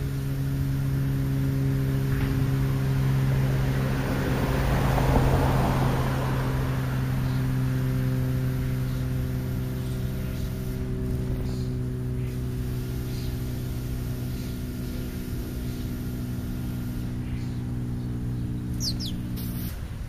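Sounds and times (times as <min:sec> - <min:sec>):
low mechanical hum: 0:00.0 - 0:20.0
vehicle passing by: 0:00.0 - 0:20.0.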